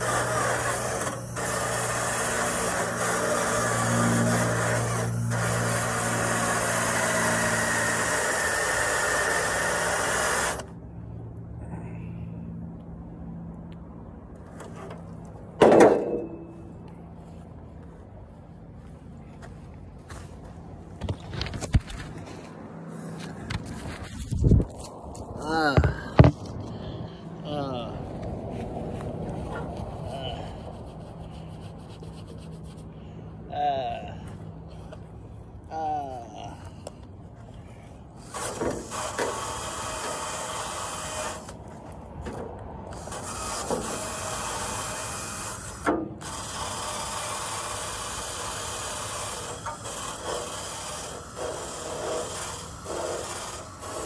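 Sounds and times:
drill abrasive scrubbing: 0:00.0 - 0:10.7, 0:38.2 - 0:41.6, 0:42.9 - 0:54.0
footsteps on grass: 0:16.5 - 0:25.4, 0:28.0 - 0:30.0
handling noise on microphone: 0:20.1 - 0:26.8.

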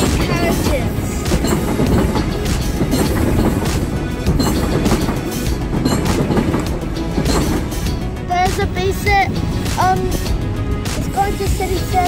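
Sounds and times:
background music: 0:00.0 - 0:12.0
electric train passing on rails: 0:00.0 - 0:12.0.

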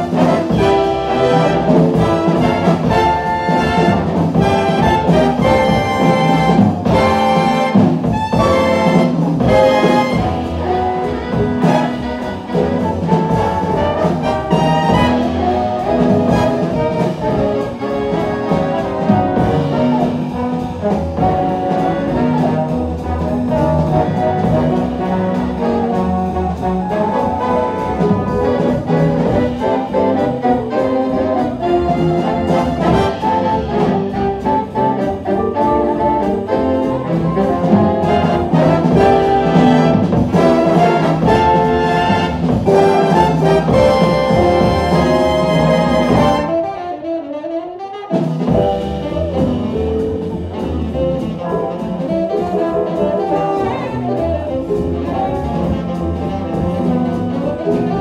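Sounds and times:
jazz big band playing: 0:00.0 - 0:58.0.

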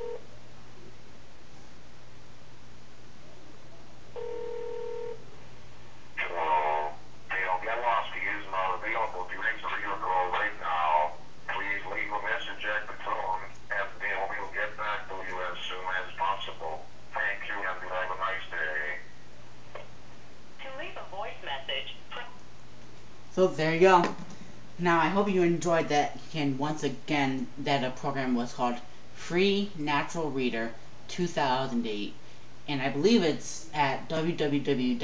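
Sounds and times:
telephone tone: 0:00.0 - 0:00.3, 0:04.2 - 0:05.2
steady low hum: 0:00.0 - 0:35.0
synthesized voice speaking: 0:06.2 - 0:19.1.

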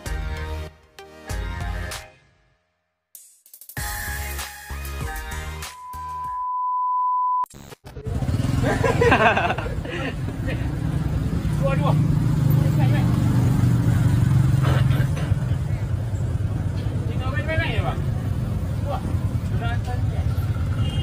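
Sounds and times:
vehicle engine humming: 0:08.0 - 0:21.0.

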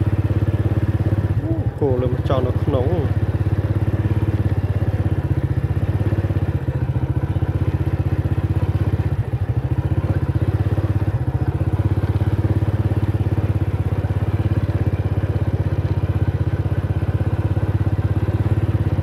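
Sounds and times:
small motorcycle engine running: 0:00.0 - 0:19.0.

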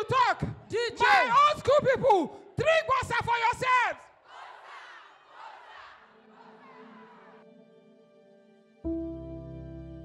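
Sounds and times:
person yelling through pa: 0:00.0 - 0:04.0.

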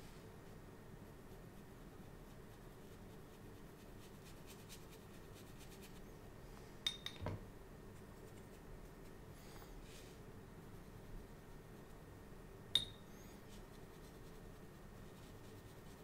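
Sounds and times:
brush strokes on paper: 0:00.0 - 0:06.1, 0:07.9 - 0:12.1, 0:13.3 - 0:16.0.

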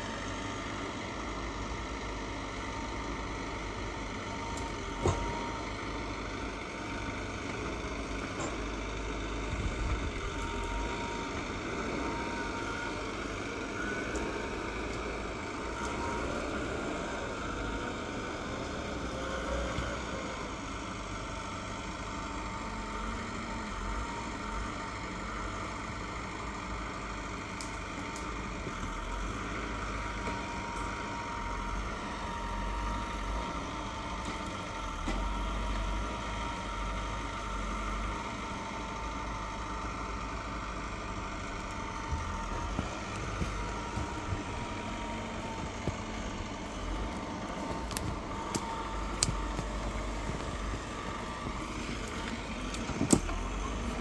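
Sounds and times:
diesel engine running: 0:00.0 - 0:54.0
thin steady whine: 0:00.0 - 0:54.0.

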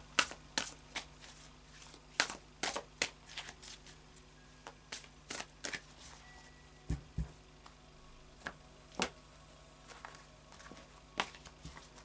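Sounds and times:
cards snapping while shuffled: 0:00.1 - 0:04.0, 0:04.7 - 0:05.9.

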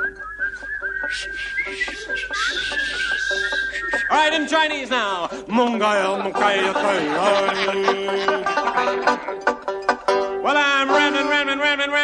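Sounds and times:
man whistling: 0:00.0 - 0:04.5
banjo picking: 0:01.0 - 0:12.0.

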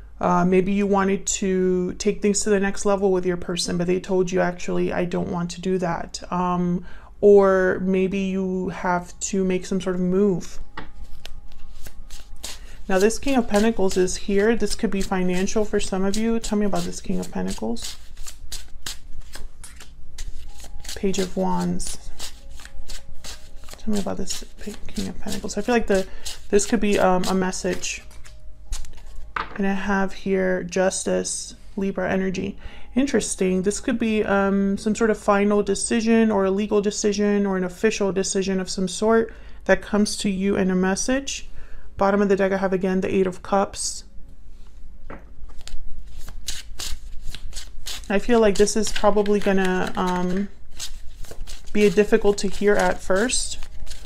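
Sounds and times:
cards being shuffled: 0:10.9 - 0:29.4, 0:45.5 - 0:54.0.

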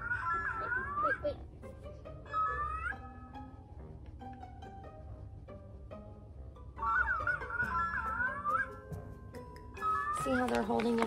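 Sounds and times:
electronic warbling toy voice: 0:00.0 - 0:01.4, 0:02.3 - 0:03.1, 0:06.8 - 0:08.8.

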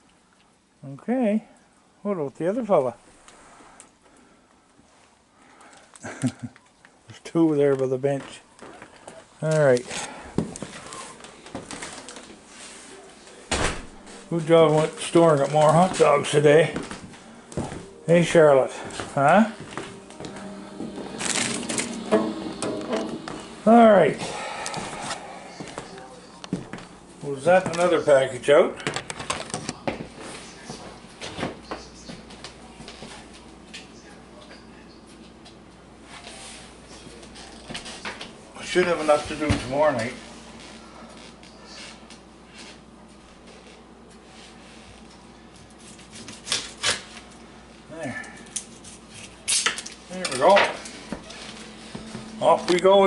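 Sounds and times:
faint steady hum: 0:00.0 - 0:53.0
crinkling and rustling handling noise: 0:04.8 - 0:33.9
plastic package rustling: 0:19.9 - 0:22.6
plastic ripping: 0:46.0 - 0:47.2.

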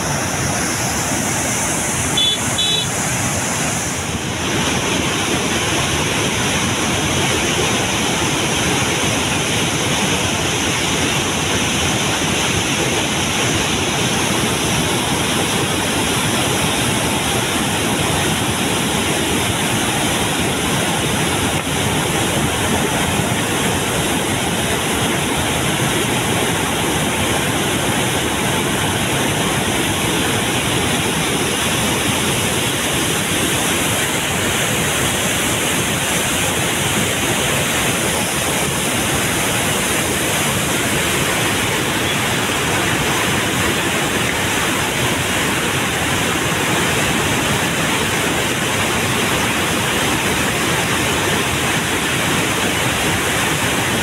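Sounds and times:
white-water torrent rushing: 0:00.0 - 0:54.0.

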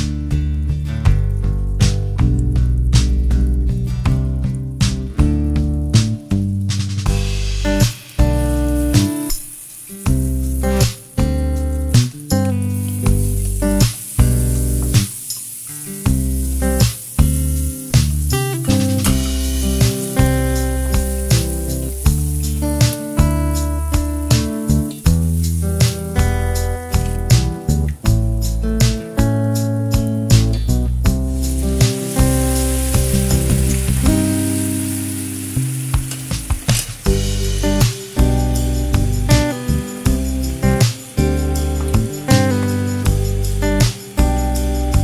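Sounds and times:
background music: 0:00.0 - 0:45.0
garlic sizzling in hot oil: 0:02.2 - 0:45.0.

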